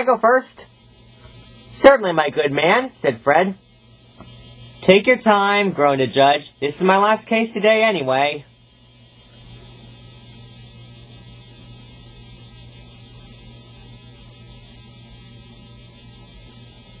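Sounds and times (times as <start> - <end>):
background hiss: 0.0 - 17.0
low electrical hum: 0.0 - 17.0.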